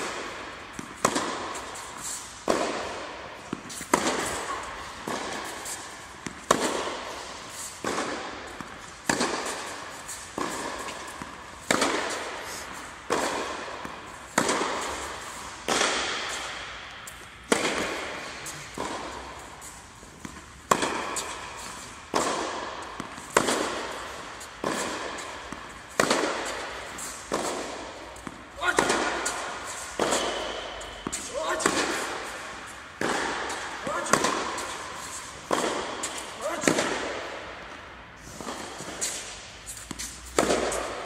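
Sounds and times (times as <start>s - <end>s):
tennis ball hits echoing: 0.0s - 41.0s.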